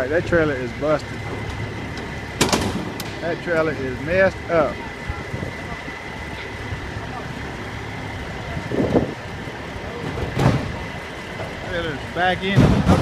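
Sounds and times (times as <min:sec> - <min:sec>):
diesel trucks running: 0:00.0 - 0:13.0
sharp bang: 0:12.5 - 0:13.0.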